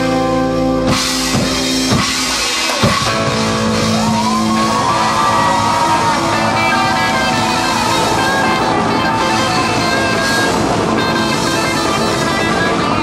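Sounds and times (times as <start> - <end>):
live blues-rock band: 0.0 - 13.0
bending lead guitar note: 2.8 - 13.0.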